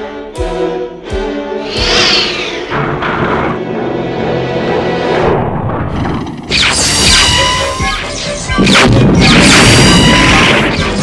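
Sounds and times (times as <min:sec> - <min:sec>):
dramatic background music: 0:00.0 - 0:11.0.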